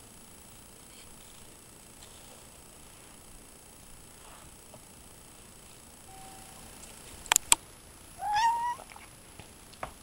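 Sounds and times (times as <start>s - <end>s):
sharp clicks: 7.3s - 7.6s
cat meowing: 8.2s - 9.0s.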